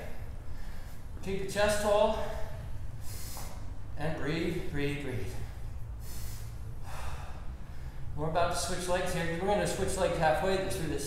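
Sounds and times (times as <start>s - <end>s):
steady low hum: 0.0s - 11.0s
man breathing through mouth: 2.2s - 3.8s, 5.3s - 8.1s.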